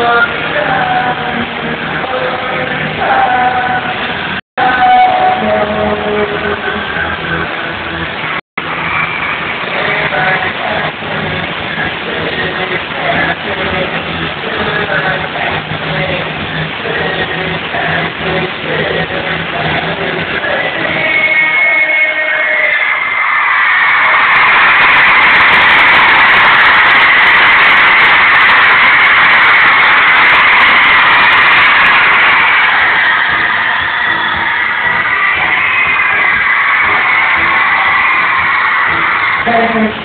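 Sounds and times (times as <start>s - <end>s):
live pop-rock band with male singer: 0.0s - 7.5s, 9.6s - 23.1s.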